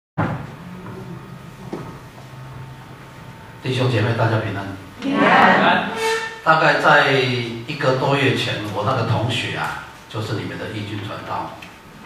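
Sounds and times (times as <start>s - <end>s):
thump: 0.2s - 0.5s
faint hum: 0.2s - 12.0s.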